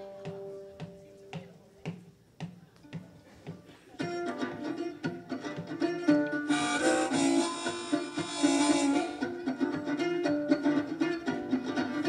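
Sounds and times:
blues mandolin picking: 0.0 - 12.0
harmonica chord: 4.2 - 12.0.

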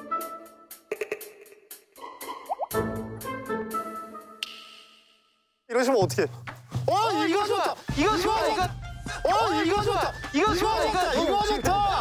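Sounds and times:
background music: 0.0 - 12.0
water-drop bloop effects: 2.3 - 2.8.

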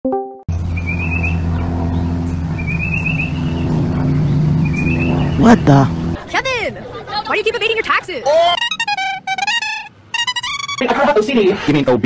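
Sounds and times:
high chirping trill: 0.5 - 6.2, 8.2 - 10.9
low engine-like hum: 0.5 - 7.6.

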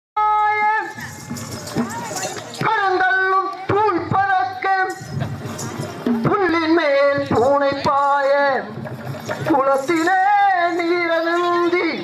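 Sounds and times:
man singing high note: 9.6 - 12.0.

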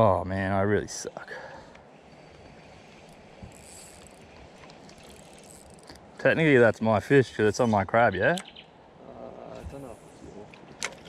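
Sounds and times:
fishing reel whirring: 2.0 - 6.0.

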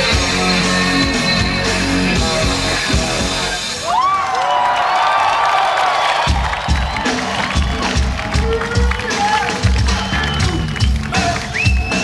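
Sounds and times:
held bending notes: 0.0 - 3.7
live rock band: 0.0 - 3.9, 6.2 - 12.0
stadium crowd: 0.0 - 12.0
kick drum beat: 6.3 - 9.0.

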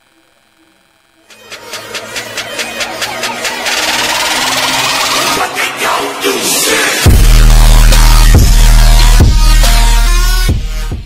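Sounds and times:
rush of noise: 1.3 - 7.1.

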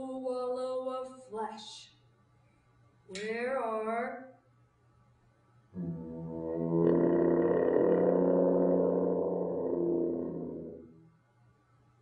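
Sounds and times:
muted trombone long note: 5.8 - 11.1.

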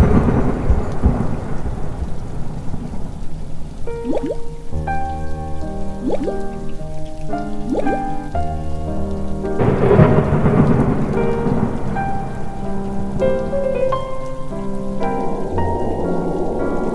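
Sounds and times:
steady rain: 0.0 - 16.9
thunder rumbling: 0.0 - 16.9
music of long held notes: 3.9 - 16.9.

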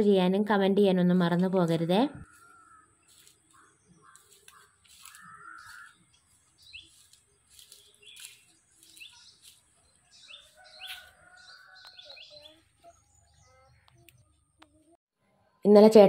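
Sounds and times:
birds chirping: 1.6 - 15.0.

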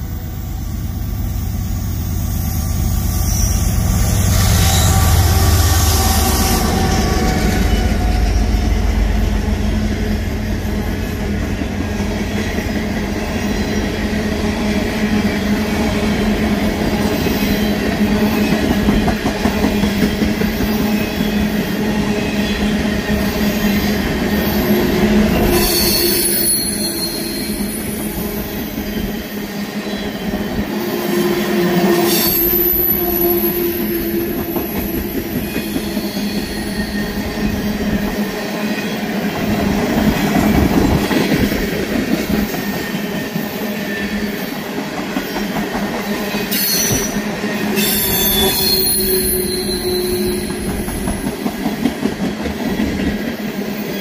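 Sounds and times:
train wheels rumbling on rail: 0.0 - 54.0
high-pitched wheel squeals: 1.9 - 8.6, 24.4 - 31.2, 47.8 - 51.0.

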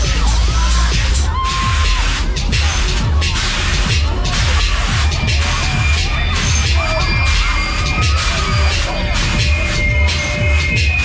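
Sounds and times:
loud dance music with heavy bass: 0.0 - 11.0.

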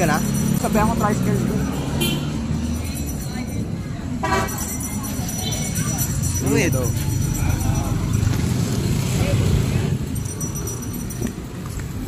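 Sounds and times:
street traffic rumble: 0.0 - 12.0
vehicle horn toot: 2.0 - 2.4, 4.2 - 4.6.

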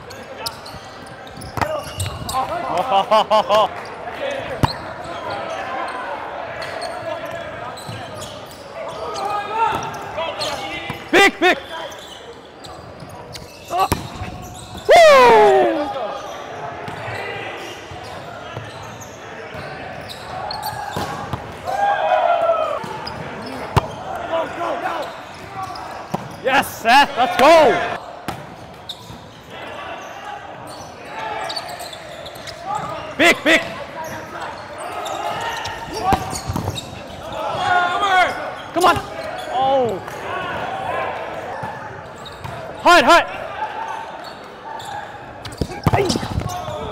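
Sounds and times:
players shouting: 8.9 - 12.0, 13.6 - 18.8, 19.4 - 28.1, 32.6 - 41.9, 42.7 - 46.9
person shouting: 14.9 - 15.9.

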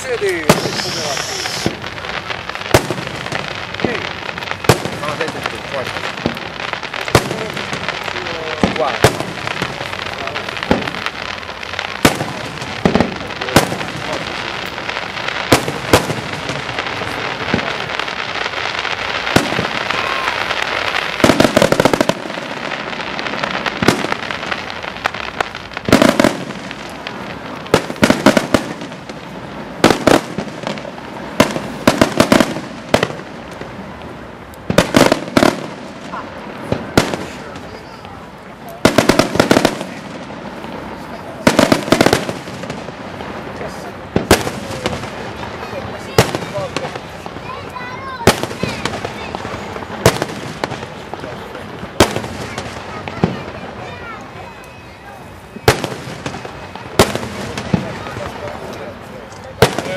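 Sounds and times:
firework shells bursting: 0.0 - 33.8
firework crackling: 0.0 - 59.9.

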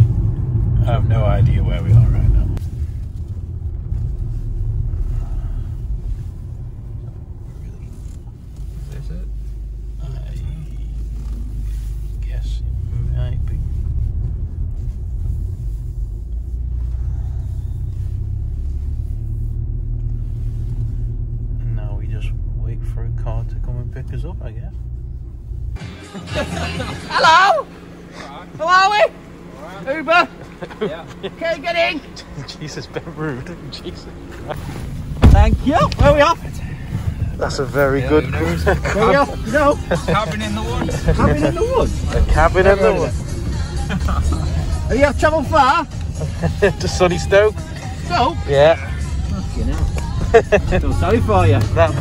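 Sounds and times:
car interior road rumble: 0.0 - 52.0.

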